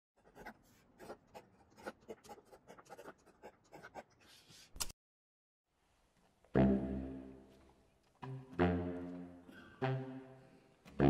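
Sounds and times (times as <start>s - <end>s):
pen scratching on paper: 0.2s - 4.5s.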